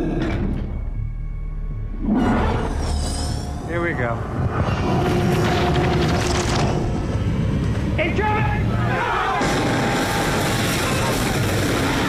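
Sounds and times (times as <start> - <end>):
roar of fire blast: 9.2 - 12.0.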